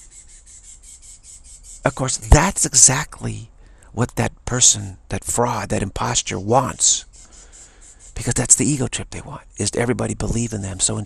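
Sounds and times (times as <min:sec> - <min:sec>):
person speaking: 0:01.8 - 0:07.2, 0:08.1 - 0:11.0.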